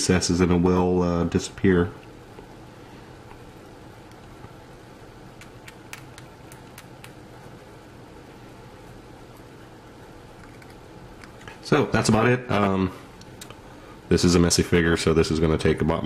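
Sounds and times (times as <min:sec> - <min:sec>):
low background hum: 0:00.0 - 0:16.0.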